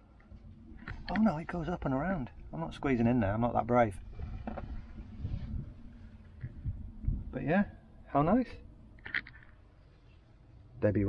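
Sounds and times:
soft bumps: 0.3 - 7.6
wind rumble on microphone: 0.4 - 8.0.

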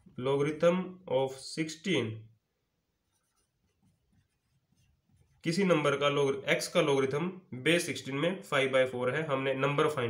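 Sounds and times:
marker scraping on whiteboard: 2.9 - 5.6.

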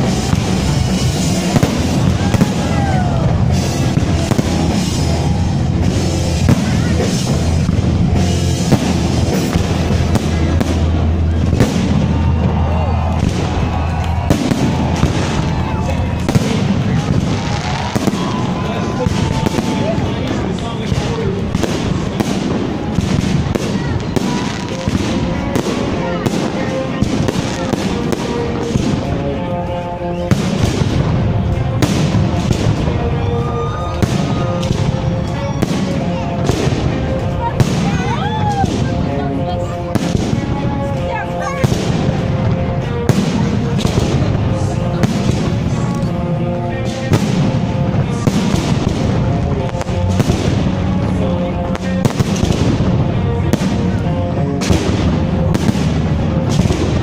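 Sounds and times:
crowd voices: 0.0 - 57.0
fireworks bursts and bangs: 0.0 - 57.0
music: 0.0 - 57.0.

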